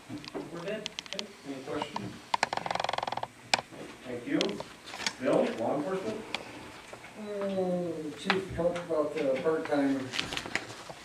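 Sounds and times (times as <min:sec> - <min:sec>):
rapid rattling creak of ticks: 0:01.8 - 0:03.3.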